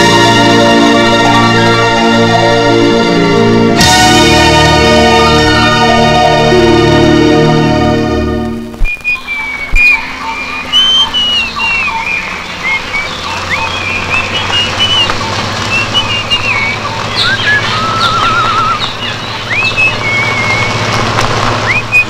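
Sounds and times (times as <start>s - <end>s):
jeep engine hum: 0.0s - 22.0s
bird trill: 0.4s - 2.7s, 8.8s - 20.9s, 21.6s - 22.0s
birds chirping and whistling: 0.5s - 2.9s, 8.8s - 22.0s.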